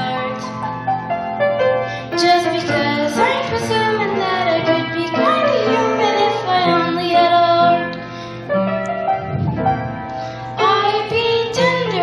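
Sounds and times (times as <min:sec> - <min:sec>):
musical accompaniment: 0:00.0 - 0:12.0
child singing: 0:02.2 - 0:07.8, 0:10.6 - 0:12.0.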